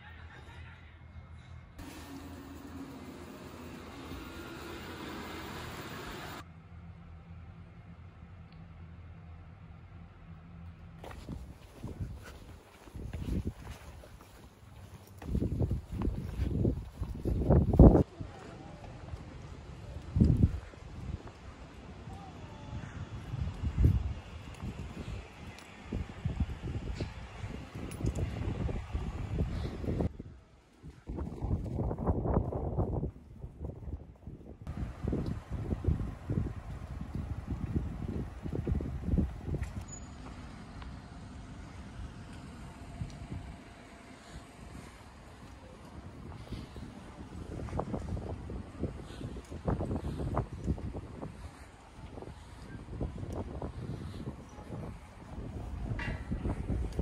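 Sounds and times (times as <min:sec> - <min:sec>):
steady outdoor hiss: 0:01.8 - 0:32.9, 0:34.7 - 0:57.0
wind buffeting microphone: 0:11.0 - 0:39.9, 0:44.6 - 0:57.0.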